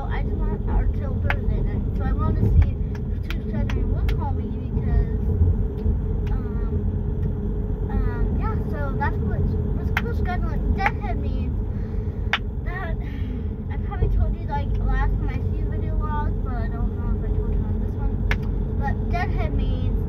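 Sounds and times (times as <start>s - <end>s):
car rumble from inside cabin: 0.0s - 20.0s.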